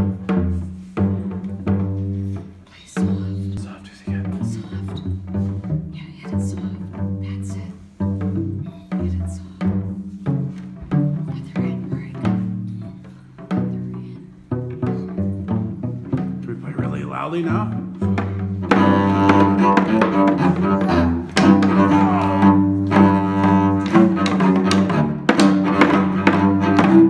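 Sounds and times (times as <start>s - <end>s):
plucked string instrument low notes: 0.0s - 27.0s
hand drum taps: 17.6s - 27.0s.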